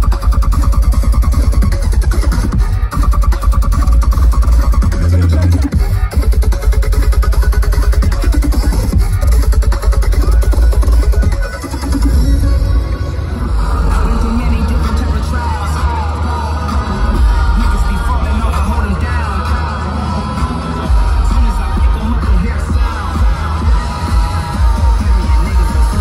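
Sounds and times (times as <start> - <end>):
bass-heavy electronic dance music: 0.0 - 26.0.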